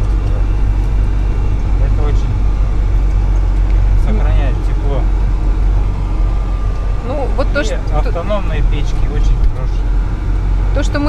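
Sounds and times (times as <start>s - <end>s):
diesel truck engine drone: 0.0s - 11.0s.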